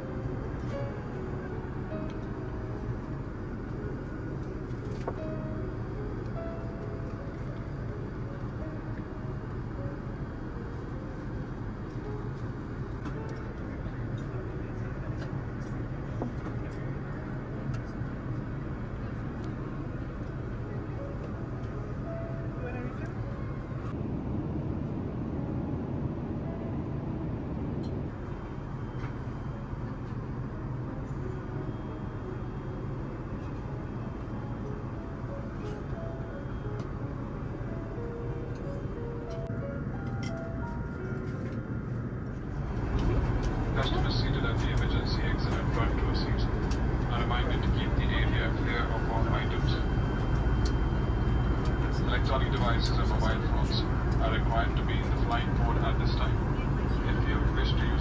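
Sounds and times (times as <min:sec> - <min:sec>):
airplane cabin drone: 0:00.0 - 0:58.0.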